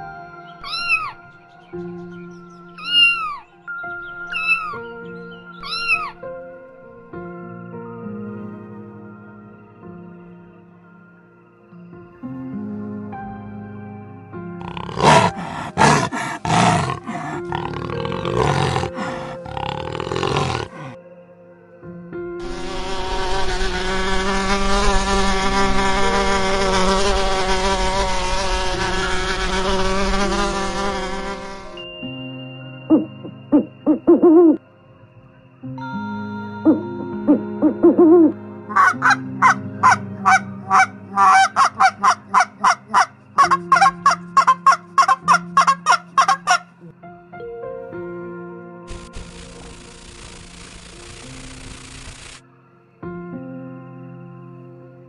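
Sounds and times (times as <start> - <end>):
soft background music: 0.0 - 55.0
animal calls: 0.6 - 1.2, 2.8 - 3.5, 4.3 - 4.8, 5.6 - 6.2, 14.6 - 21.0
owl hoots: 0.6 - 1.2, 2.8 - 3.4, 4.3 - 4.8, 5.6 - 6.2, 32.9 - 34.6, 36.6 - 39.2
geese honking: 38.2 - 46.7.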